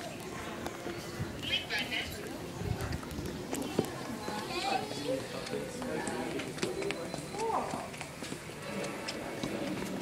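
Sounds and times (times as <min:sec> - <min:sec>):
background voices and hubbub: 0:00.0 - 0:10.0.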